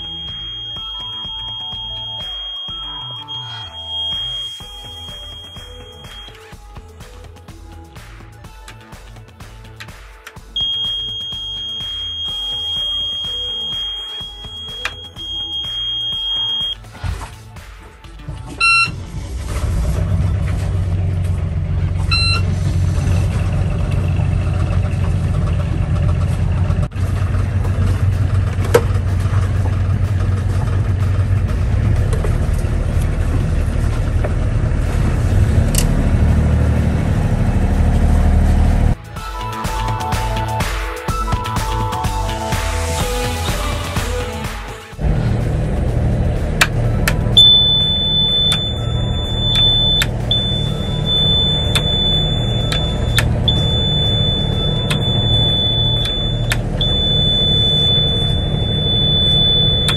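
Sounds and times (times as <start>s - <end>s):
high-pitched alarm tone: 0.0s - 6.4s, 10.6s - 16.8s, 22.1s - 22.5s, 47.4s - 59.9s
short alarm beeps: 0.0s - 6.4s, 10.6s - 16.8s, 18.6s - 19.0s, 22.1s - 22.5s, 47.4s - 59.9s
steady low sound: 45.0s - 59.9s.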